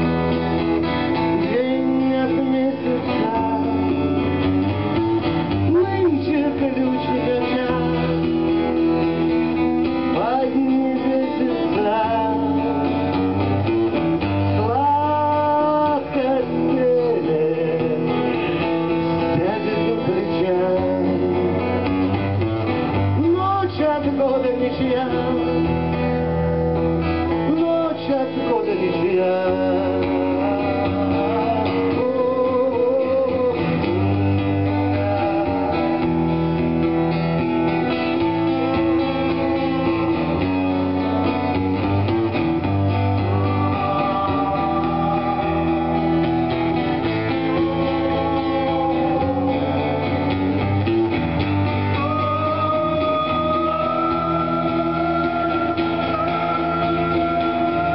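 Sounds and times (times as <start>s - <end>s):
man singing: 0.0s - 26.2s, 27.2s - 36.9s, 37.6s - 57.9s
acoustic guitar strumming: 0.0s - 57.9s.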